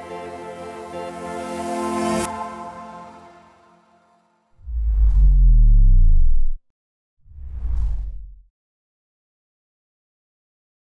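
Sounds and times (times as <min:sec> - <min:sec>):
deep whoosh: 0:04.6 - 0:06.6, 0:07.3 - 0:08.5.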